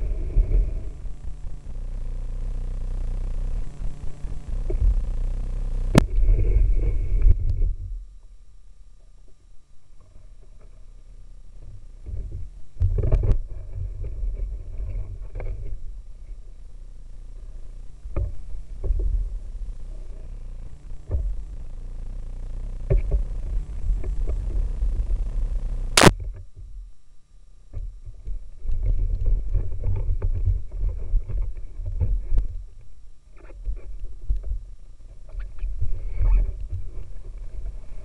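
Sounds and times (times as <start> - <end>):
low rumble of river: 0.0 - 38.0.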